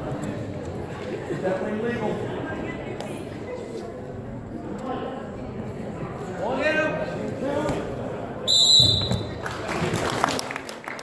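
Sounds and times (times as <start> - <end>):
referee's whistle blast: 8.5 - 9.3
people clapping: 9.1 - 11.0.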